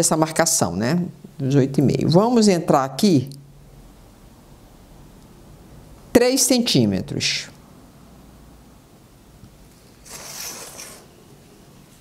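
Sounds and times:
ruler and pen scraping cardboard: 10.0s - 11.2s.

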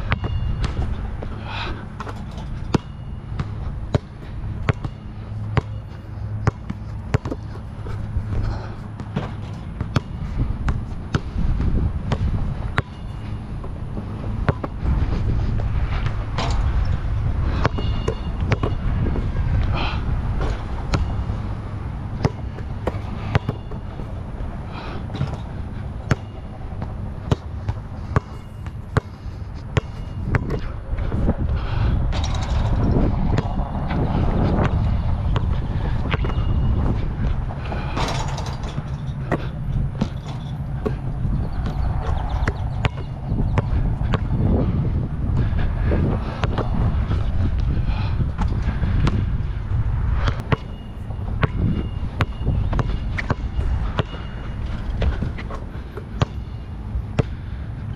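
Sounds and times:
basketball bouncing on court: 0.0s - 14.8s, 15.6s - 31.4s, 32.1s - 49.3s, 50.2s - 57.5s
wind buffeting microphone: 0.0s - 57.9s
ball striking hoop: 2.0s - 5.8s, 9.0s - 13.1s, 14.4s - 14.8s, 17.6s - 18.8s, 22.2s - 23.9s, 29.8s - 30.7s, 35.4s - 36.6s, 41.6s - 44.5s, 51.4s - 54.3s, 56.2s - 56.5s.

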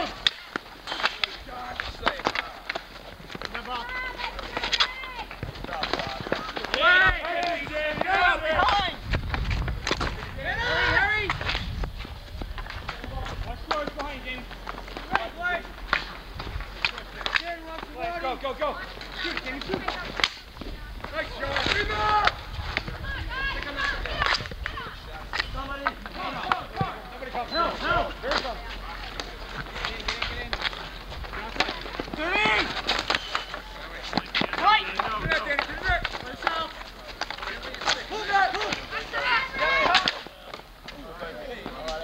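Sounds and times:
hockey sticks and ball clacking: 0.0s - 42.0s
players shouting: 3.4s - 9.0s, 10.1s - 11.5s, 13.5s - 20.3s, 21.0s - 42.0s.

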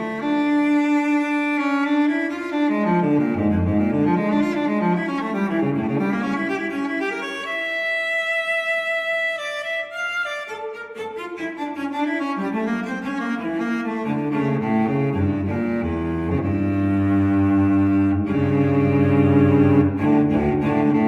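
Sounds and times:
low bowed string music: 0.0s - 21.0s.

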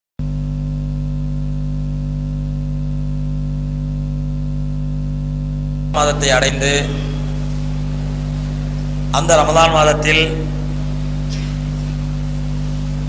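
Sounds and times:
electrical hum and hiss: 0.3s - 13.0s
man's voice: 6.0s - 11.5s.

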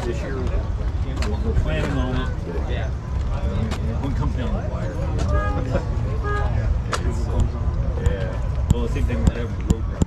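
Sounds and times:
people talking: 0.0s - 10.0s
steady low rumble: 0.0s - 10.0s.

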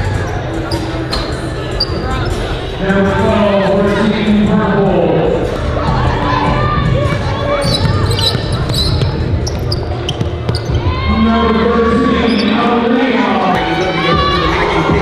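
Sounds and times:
sneaker squeaks: 0.3s - 2.4s, 7.5s - 11.0s, 12.2s - 12.8s
hip-hop backing track: 12.8s - 15.0s.

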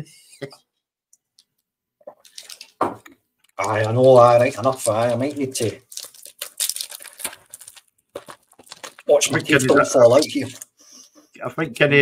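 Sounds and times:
plastic packaging crinkling: 2.2s - 2.8s, 3.4s - 10.7s.

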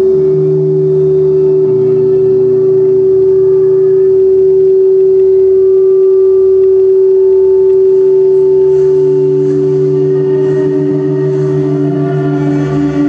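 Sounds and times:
deep pulsing throb: 0.0s - 13.0s
electronic drone music: 0.0s - 13.0s
faint higher tones: 0.0s - 13.0s.

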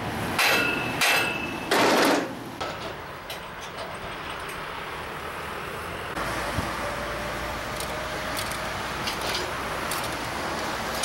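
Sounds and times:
road traffic rumble: 0.0s - 11.0s
hammer striking metal: 0.4s - 3.0s
metal clatter: 0.4s - 4.6s.

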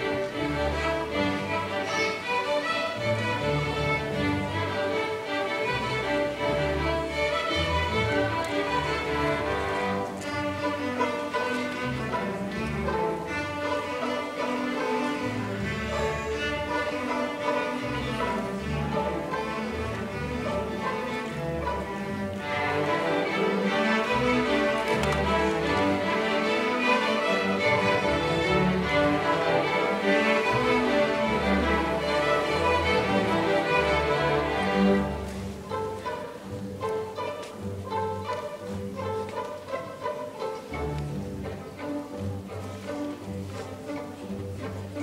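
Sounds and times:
string orchestra playing: 0.0s - 45.0s.

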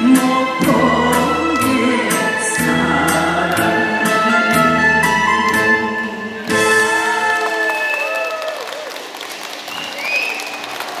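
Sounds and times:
audience applauding: 6.8s - 11.0s.

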